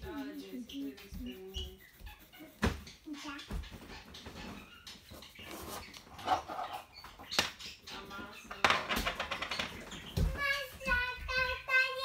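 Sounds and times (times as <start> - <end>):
child singing: 10.2 - 12.0.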